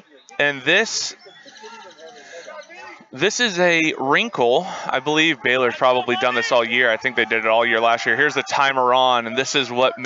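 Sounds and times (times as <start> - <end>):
players calling and shouting: 0.0 - 10.0.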